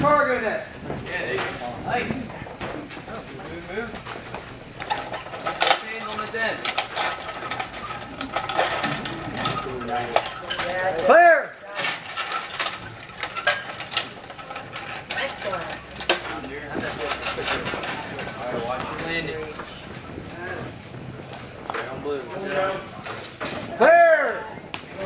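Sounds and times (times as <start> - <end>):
metal chains and carabiners clinking: 4.8 - 19.4.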